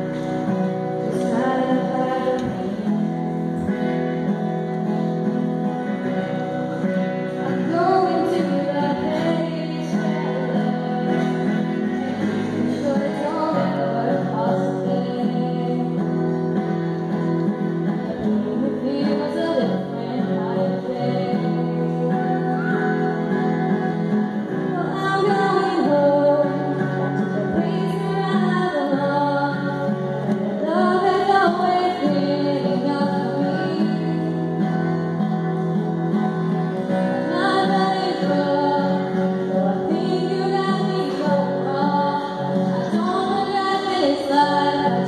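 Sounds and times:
woman singing into microphone: 0.0 - 6.2, 7.2 - 45.0
acoustic guitar: 0.0 - 45.0.

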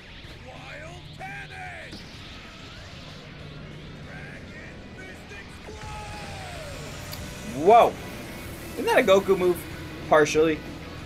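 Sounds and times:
faint music: 0.0 - 11.0
low hum: 0.0 - 11.0.

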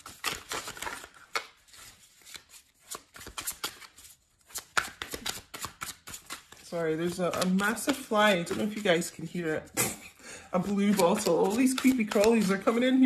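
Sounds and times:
cards shuffled by hand: 0.0 - 13.0.

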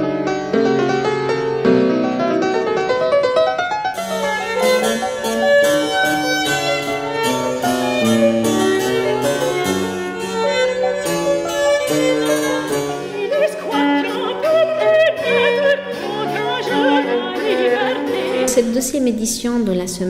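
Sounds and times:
harpsichord plucked notes: 0.0 - 19.3
violin melody: 3.9 - 19.2.

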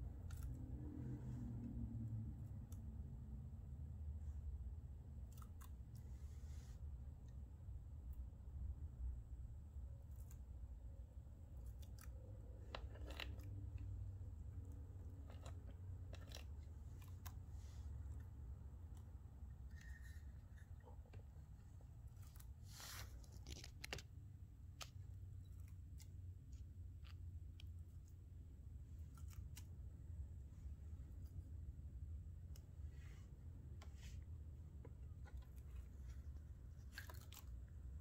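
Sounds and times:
low steady rumble: 0.0 - 38.0
lizard clicks and scrapes: 11.5 - 27.7, 35.0 - 37.8.

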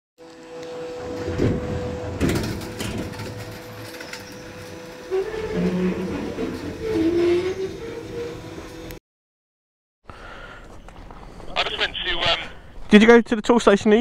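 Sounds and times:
garage door squeaking: 1.2 - 9.0.

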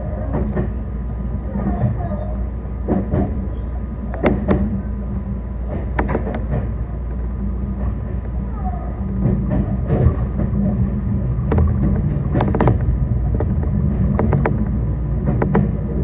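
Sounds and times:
train wheels rumbling on rail: 0.0 - 16.0
wheels clicking over rail joints: 1.5 - 4.8, 5.6 - 16.0.

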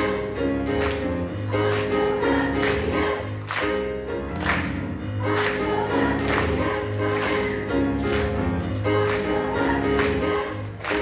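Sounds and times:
choir singing chords: 0.0 - 3.9, 5.1 - 11.0
piano accompaniment: 0.0 - 11.0.

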